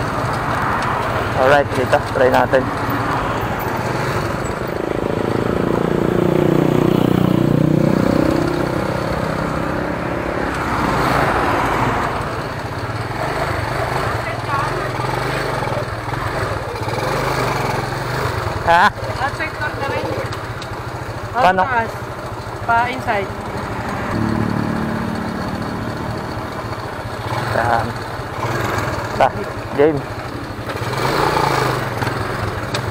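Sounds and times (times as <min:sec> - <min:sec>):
motorcycle engine revving: 0:00.0 - 0:32.9
road noise: 0:00.0 - 0:32.9.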